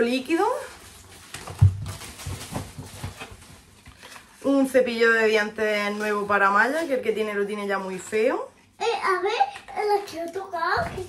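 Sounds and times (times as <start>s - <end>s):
shopping bag rustling: 0.0s - 4.7s.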